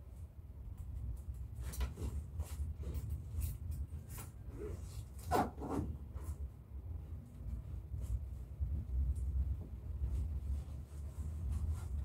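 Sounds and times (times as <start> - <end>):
low steady rumble: 5.9 - 12.0.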